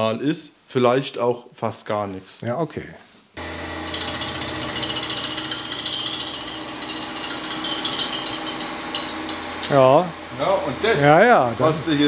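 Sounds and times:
high-pitched grinding: 0:03.4 - 0:11.2
motor hum: 0:03.4 - 0:12.0.

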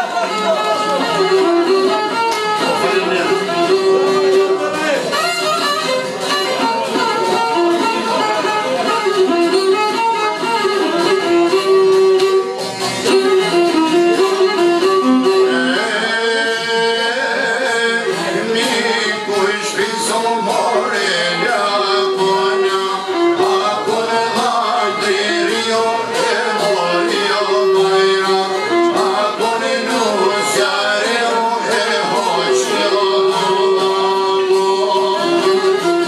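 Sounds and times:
plucked lutes: 0:00.0 - 0:36.0
violin melody: 0:00.0 - 0:36.0.

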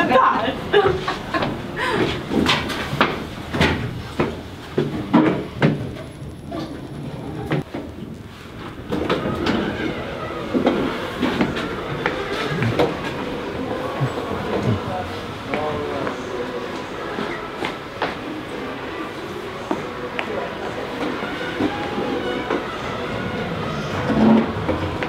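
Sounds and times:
shop background noise: 0:00.0 - 0:25.0
lift doors sliding: 0:20.3 - 0:25.0.

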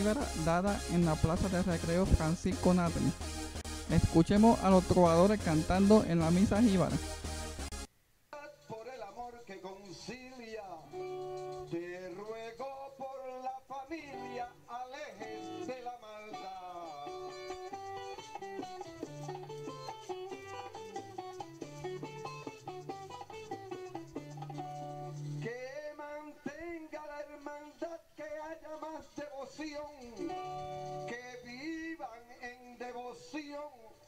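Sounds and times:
person singing: 0:10.9 - 0:18.5, 0:25.4 - 0:32.4
plucked strings: 0:16.4 - 0:25.5, 0:30.1 - 0:31.2.

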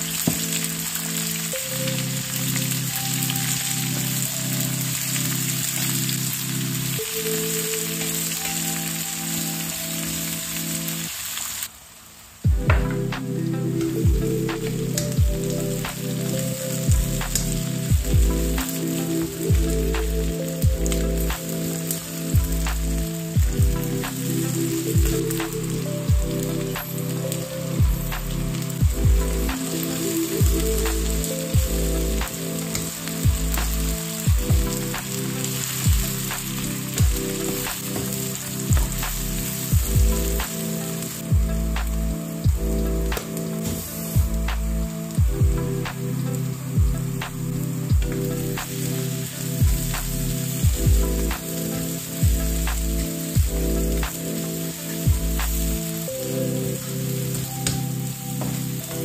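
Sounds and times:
background music with bass: 0:00.0 - 0:11.1, 0:12.4 - 0:59.0
onions sizzling in oil: 0:00.0 - 0:59.0.

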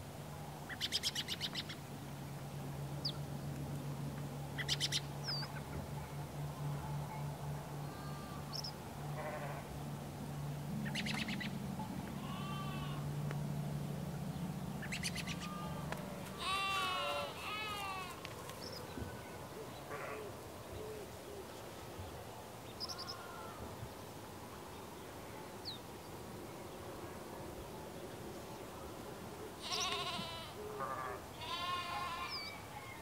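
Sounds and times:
low steady hum: 0:00.0 - 0:31.4
sheep or goat bleating: 0:09.2 - 0:09.7, 0:12.2 - 0:13.0, 0:15.4 - 0:18.2, 0:29.6 - 0:32.5.

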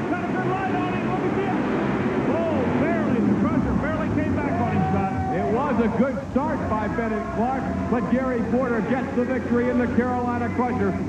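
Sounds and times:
crowd yelling: 0:00.0 - 0:11.0
monster truck engines rumbling: 0:00.0 - 0:11.0.

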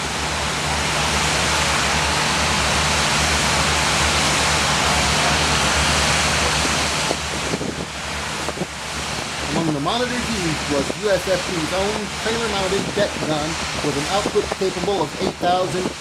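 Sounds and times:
low steady drone: 0:00.0 - 0:16.0
water jet rushing: 0:00.0 - 0:16.0.

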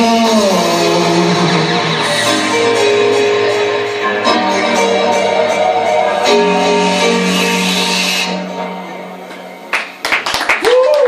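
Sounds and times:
synthesizer low chord: 0:00.0 - 0:10.0.

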